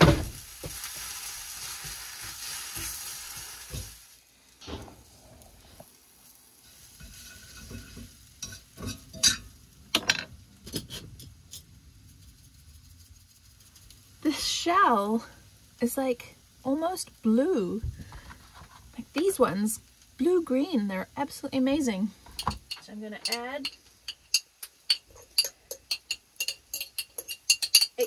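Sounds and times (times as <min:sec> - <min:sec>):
egg frying sizzle: 0:00.0 - 0:28.0
utensil clinking against pan: 0:07.0 - 0:11.6, 0:22.3 - 0:28.0
egg cracking: 0:22.3 - 0:28.0.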